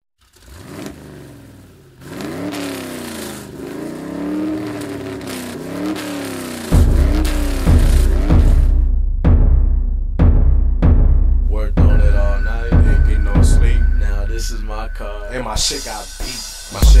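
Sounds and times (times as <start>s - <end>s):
car engine revving: 0.2s - 17.0s
heavy bass beat: 6.7s - 17.0s.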